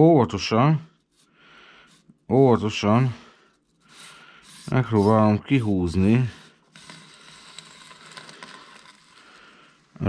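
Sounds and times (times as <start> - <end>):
stovepipe scraping: 1.9 - 10.0.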